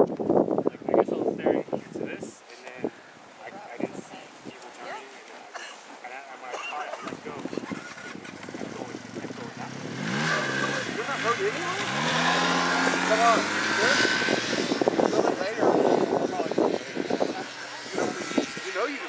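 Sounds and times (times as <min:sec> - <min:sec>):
people talking: 0:00.7 - 0:07.7, 0:08.4 - 0:19.0
snowmobile engine revving: 0:07.1 - 0:19.0.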